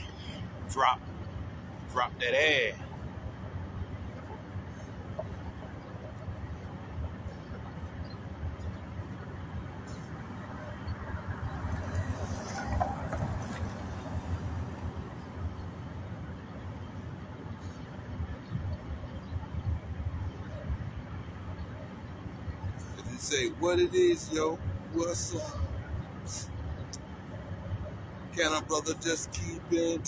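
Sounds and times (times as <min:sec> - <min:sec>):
low outdoor background rumble: 0:00.0 - 0:30.0.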